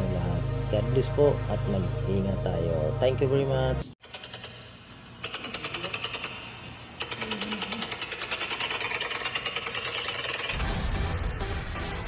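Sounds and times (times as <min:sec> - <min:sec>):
electronic music with deep bass: 0:00.0 - 0:03.9.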